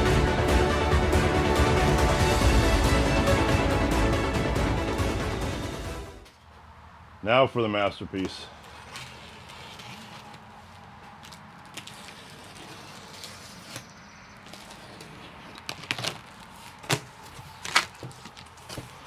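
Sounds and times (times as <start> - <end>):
sharp cardboard noises: 8.0 - 19.0
blade slitting packing tape: 8.7 - 19.0
cardboard flaps pulled apart: 11.2 - 19.0.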